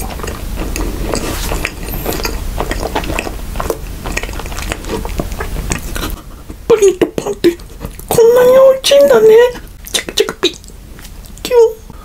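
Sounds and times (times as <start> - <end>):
chewing sandwich: 0.0 - 8.2.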